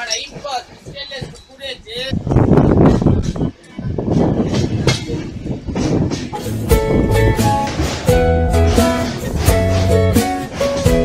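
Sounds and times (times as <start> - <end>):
train wheels rumbling on rails: 0.0 - 11.0
wheels clacking over rail joints: 4.5 - 11.0.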